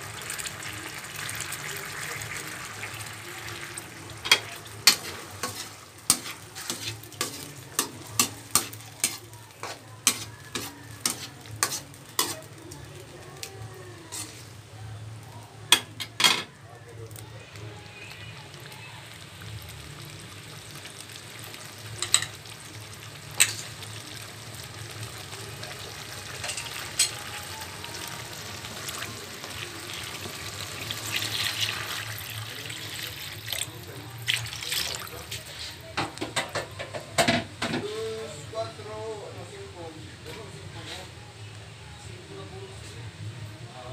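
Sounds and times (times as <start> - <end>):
water poured into a wok: 0.0 - 5.8, 28.8 - 35.5
sauce simmering: 0.0 - 11.1, 17.0 - 35.5.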